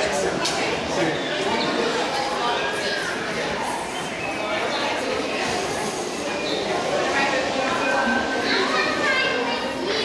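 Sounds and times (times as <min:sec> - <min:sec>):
high-pitched voices chattering: 0:00.0 - 0:10.0.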